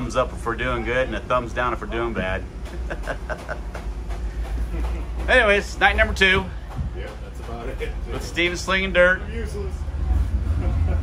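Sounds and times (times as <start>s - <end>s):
laughter: 2.7s - 3.9s, 10.5s - 11.0s.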